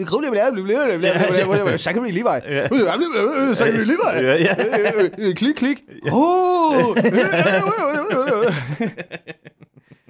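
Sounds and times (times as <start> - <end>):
man laughing: 1.0 - 10.0.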